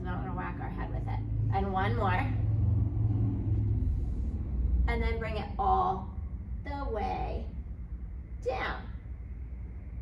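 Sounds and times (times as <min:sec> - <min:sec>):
faint hum: 0:00.0 - 0:10.0
low rumble: 0:00.0 - 0:10.0.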